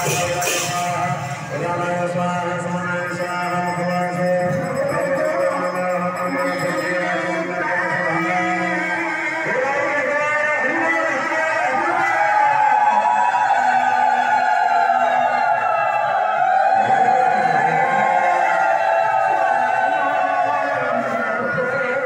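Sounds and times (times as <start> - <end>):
crowd singing high wavering notes: 0.0 - 10.0, 11.3 - 22.0.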